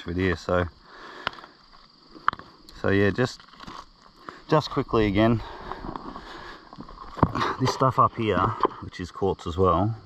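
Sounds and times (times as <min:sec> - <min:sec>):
rocks clicking and knocking together: 0:03.2 - 0:04.5, 0:05.6 - 0:08.8.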